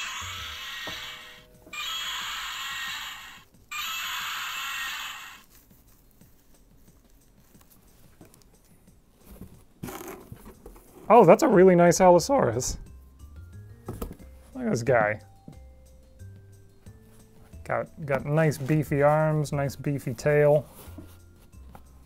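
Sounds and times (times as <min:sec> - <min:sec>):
toy roar from sound box: 0:00.0 - 0:05.5.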